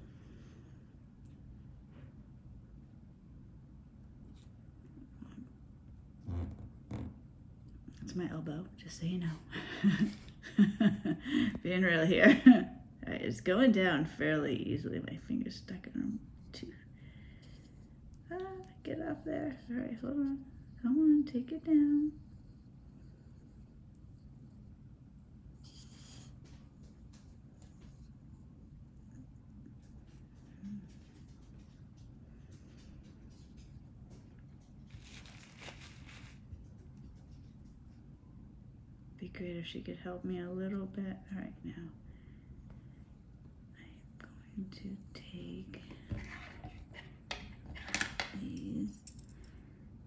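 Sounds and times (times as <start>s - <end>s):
soft rustle of fingers handling: 32.5s - 38.1s.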